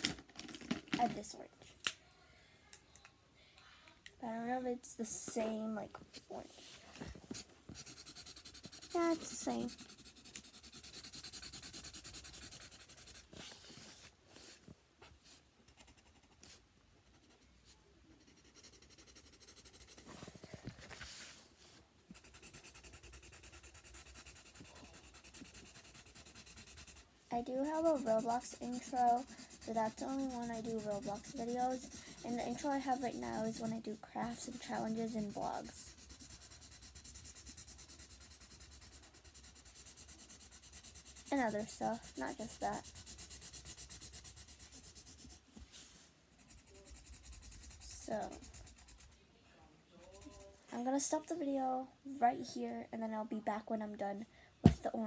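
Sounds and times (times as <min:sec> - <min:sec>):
marker scribbling on paper: 0:07.3 - 0:14.6, 0:18.2 - 0:20.2, 0:22.1 - 0:49.1.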